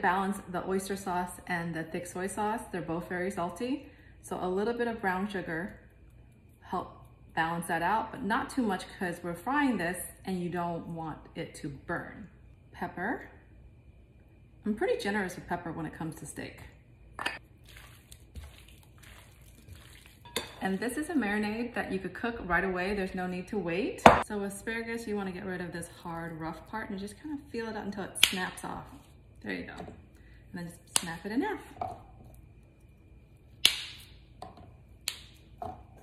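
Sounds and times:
wet squishing of meat in marinade: 0:17.5 - 0:20.3
asparagus snapping: 0:35.0 - 0:35.4.

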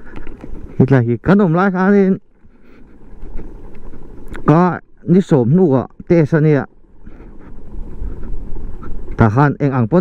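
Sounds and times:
person speaking: 0:00.7 - 0:02.3
wind on microphone: 0:07.0 - 0:09.6.

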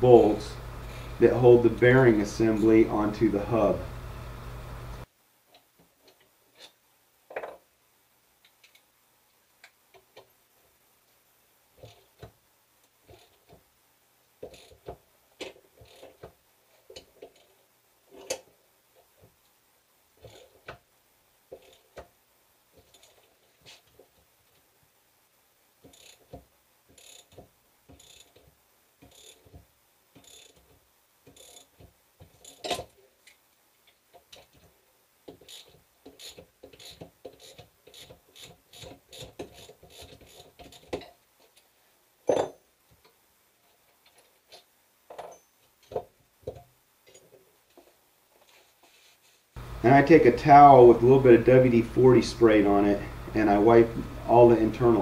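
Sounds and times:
socket ratchet clicking: 0:35.4 - 0:40.9.

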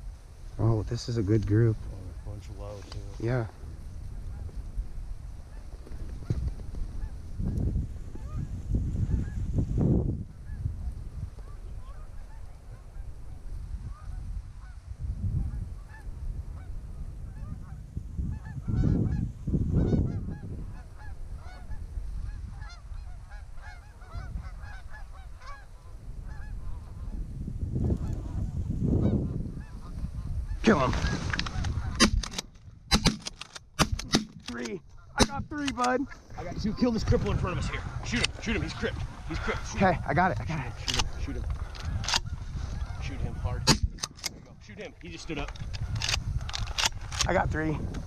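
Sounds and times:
geese honking: 0:17.4 - 0:27.1, 0:28.0 - 0:32.0, 0:34.9 - 0:43.6.

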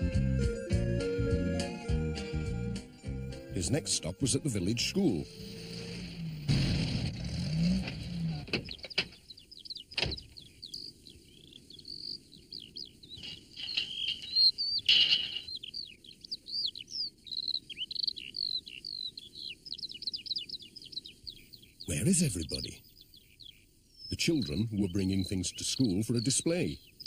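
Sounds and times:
songbirds chirping: 0:00.0 - 0:27.0.

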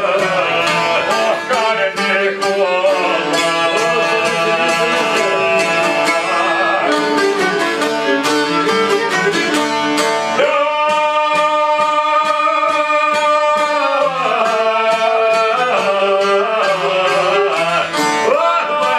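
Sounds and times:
plucked long-necked lutes: 0:00.0 - 0:18.9
bowed violin melody: 0:03.1 - 0:10.4.

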